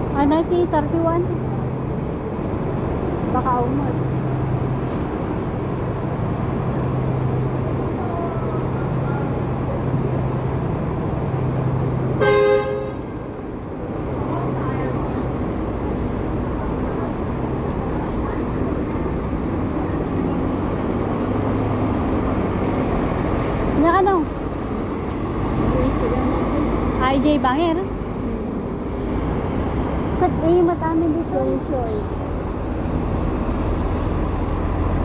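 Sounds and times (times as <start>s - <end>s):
traffic rumble: 0.0s - 35.0s
vehicle horn toot: 12.2s - 13.1s.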